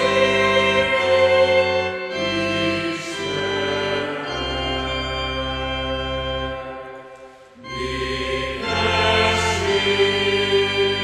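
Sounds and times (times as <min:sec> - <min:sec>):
choir singing a christmas song: 0:00.0 - 0:11.0
sustained accompaniment: 0:00.0 - 0:11.0.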